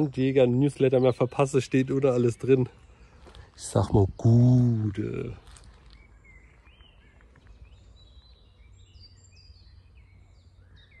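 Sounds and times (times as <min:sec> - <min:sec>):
songbirds whistling: 0:00.0 - 0:11.0.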